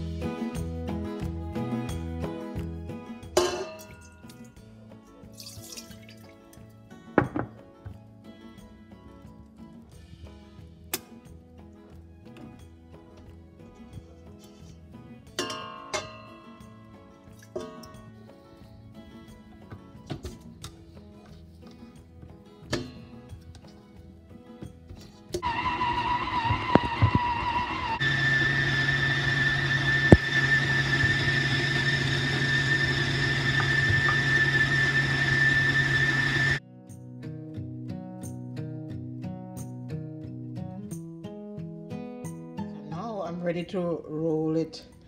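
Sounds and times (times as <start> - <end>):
soft music with plucked notes: 0.0 - 25.4, 36.6 - 45.0
mixer paddle beating dough: 25.4 - 36.6
stand mixer motor whining: 25.4 - 36.6.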